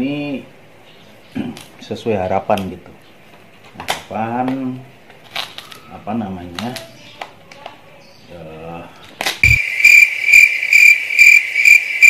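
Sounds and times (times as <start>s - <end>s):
crickets chirping: 9.4s - 12.0s.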